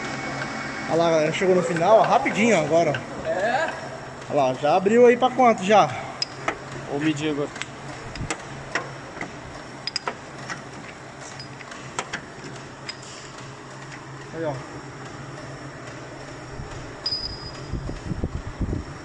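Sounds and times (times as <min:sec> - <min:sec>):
lathe motor humming: 0:00.0 - 0:12.9.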